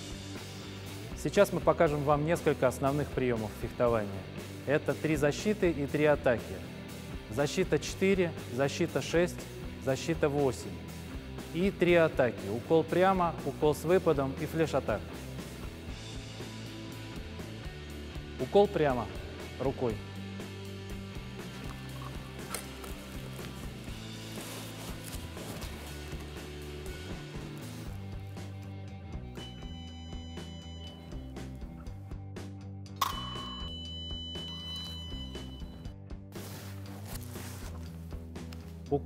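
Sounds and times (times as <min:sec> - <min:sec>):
background music: 0:00.0 - 0:39.0
scoring machine beep: 0:33.0 - 0:35.9.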